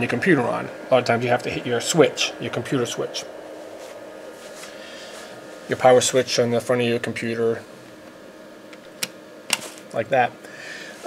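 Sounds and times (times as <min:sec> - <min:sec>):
faint steady background noise: 0:00.0 - 0:11.0
power switch clicks: 0:08.0 - 0:09.6.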